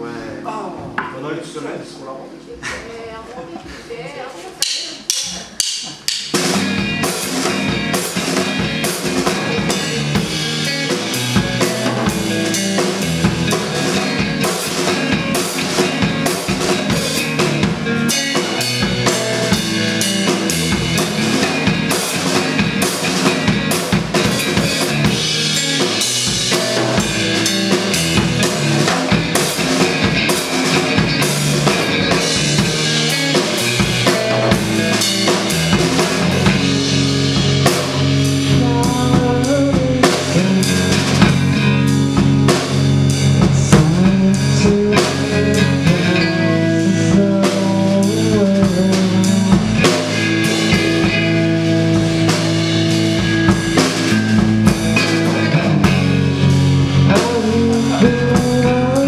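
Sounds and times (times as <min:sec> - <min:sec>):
rock band playing: 0:00.0 - 0:59.0
drum kit snare and bass drum: 0:04.6 - 0:59.0
electric guitar: 0:06.0 - 0:59.0.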